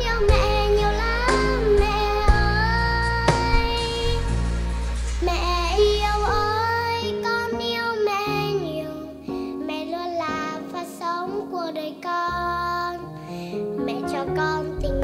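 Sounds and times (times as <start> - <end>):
instrumental accompaniment: 0.0 - 11.2
girl singing: 0.0 - 15.0.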